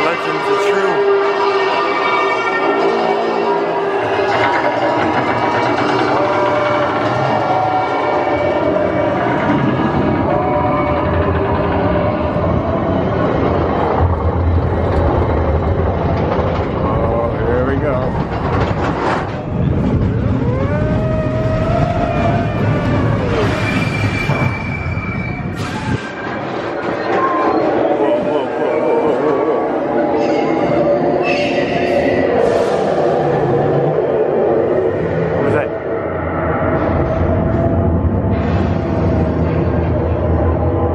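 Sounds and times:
roller coaster train clattering on track: 0.0s - 33.9s.

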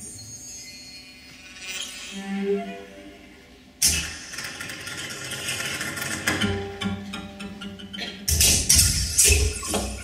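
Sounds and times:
crackling rattling noise texture: 3.8s - 6.5s.

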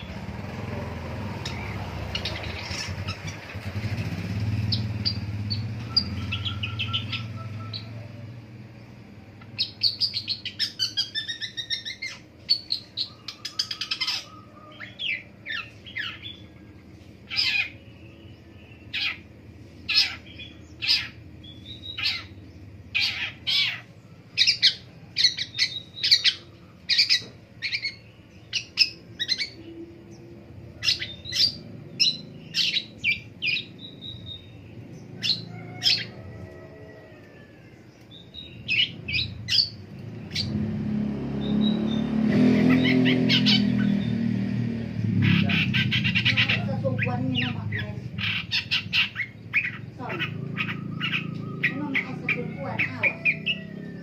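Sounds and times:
bird singing sharp high notes: 4.6s - 8.0s.

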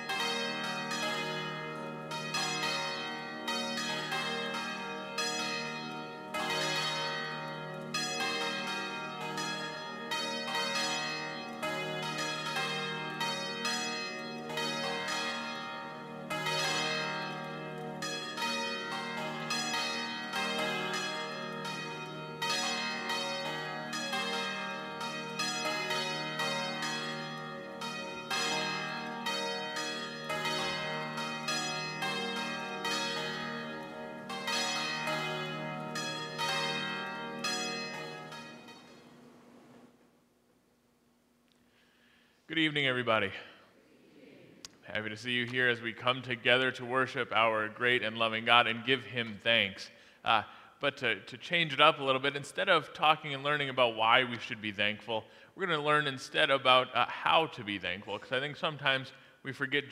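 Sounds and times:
church bells ringing: 0.0s - 40.0s, 42.6s - 43.6s, 44.9s - 59.9s.

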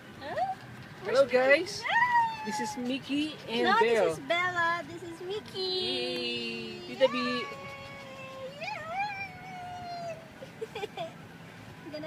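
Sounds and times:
dog whining: 1.8s - 4.2s, 6.7s - 10.3s.

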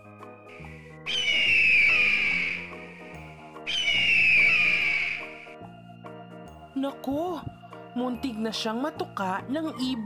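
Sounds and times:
soft background music: 0.0s - 10.0s
bird of prey screeching: 1.1s - 2.8s, 3.7s - 5.4s.

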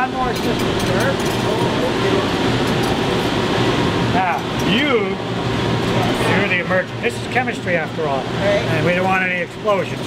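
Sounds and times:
equipment humming and hissing: 0.0s - 10.0s.

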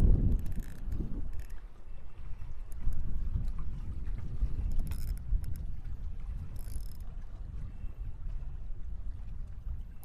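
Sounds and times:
wind buffeting microphone: 0.0s - 10.0s
faint clicks: 0.3s - 1.6s.

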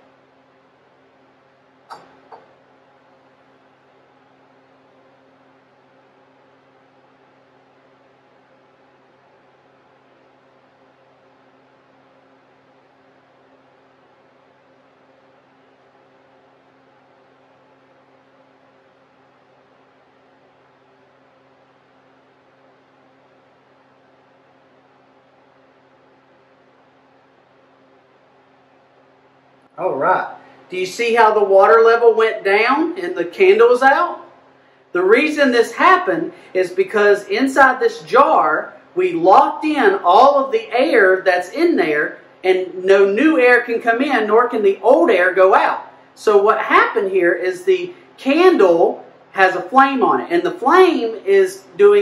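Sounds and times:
faint room hum with low tones: 0.0s - 52.0s.

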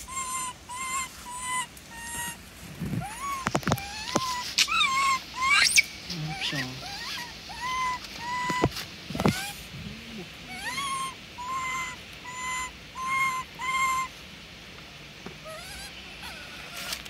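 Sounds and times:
monkey squealing: 0.0s - 2.4s, 3.0s - 9.6s, 10.4s - 14.1s, 15.4s - 17.0s
monkey calling: 0.0s - 14.2s, 15.4s - 17.0s.

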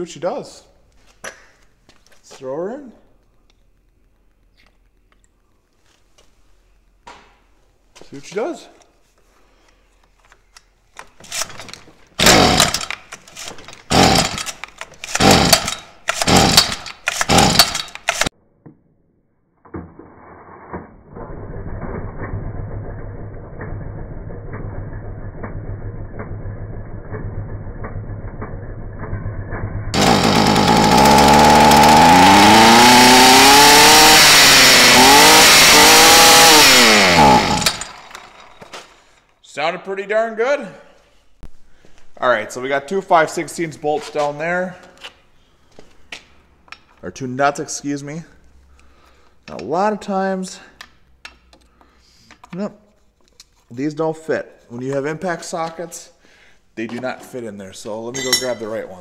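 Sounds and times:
recoil starter pulls: 11.3s - 18.3s, 30.0s - 39.2s
string trimmer engine: 12.2s - 13.0s, 13.9s - 18.3s, 30.0s - 39.0s.

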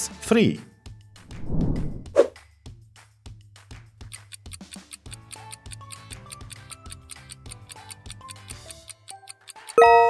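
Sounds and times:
fast ticking: 4.1s - 9.8s
countdown timer music: 4.1s - 10.0s.

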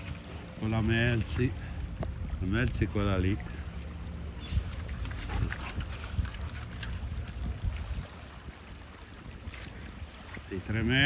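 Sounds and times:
wind rumbling on microphone: 0.0s - 3.2s, 4.2s - 11.0s.

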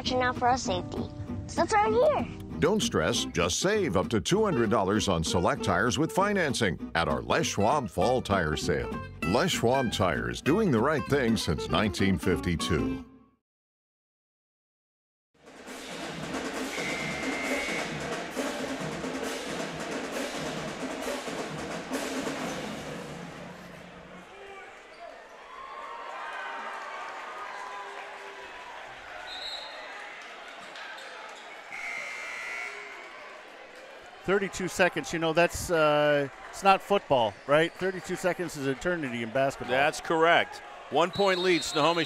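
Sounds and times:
bass and snare drumline cadence: 15.5s - 23.8s.

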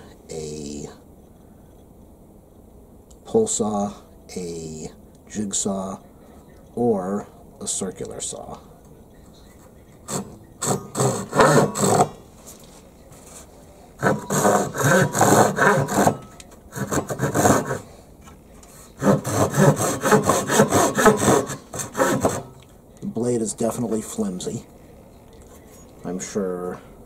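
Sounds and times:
saw cutting wooden board: 10.0s - 12.2s, 14.0s - 17.9s, 18.9s - 22.6s.

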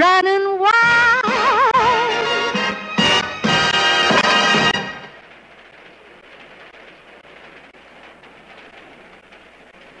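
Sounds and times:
light crackles: 3.7s - 10.0s.

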